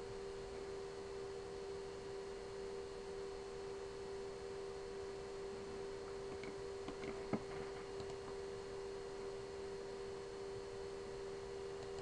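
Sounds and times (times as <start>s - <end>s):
steady electrical hum: 0.0s - 12.0s.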